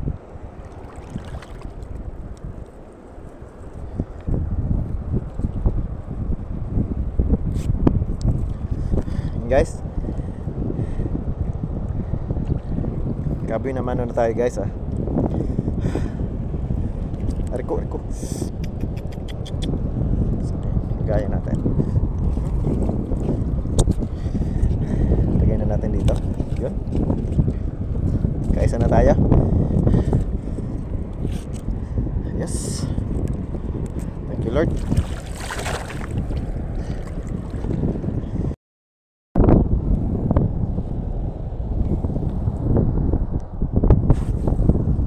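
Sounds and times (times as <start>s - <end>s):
wind buffeting microphone: 0.0s - 38.6s, 39.4s - 45.0s.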